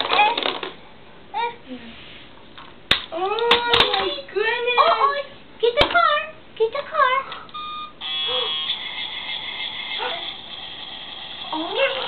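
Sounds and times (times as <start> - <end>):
electronic toy beep: 7.6 - 10.4.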